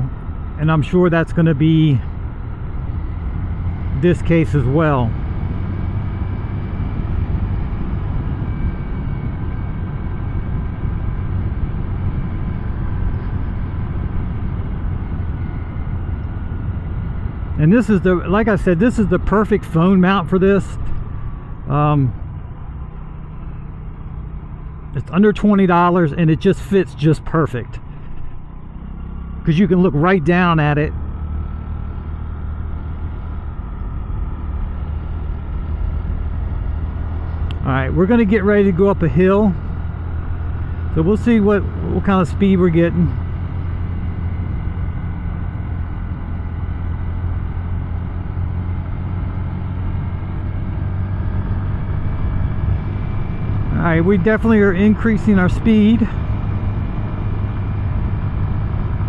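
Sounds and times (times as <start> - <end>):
small motorcycle engine running: 0.0 - 59.0
wind and road noise: 0.0 - 59.0.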